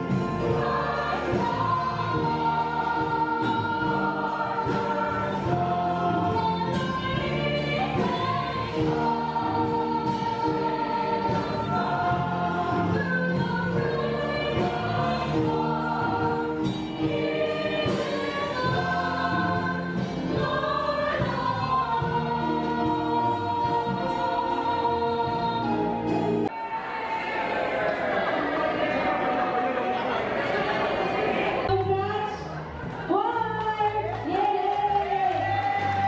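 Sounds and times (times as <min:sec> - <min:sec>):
choir singing: 0:00.0 - 0:31.7.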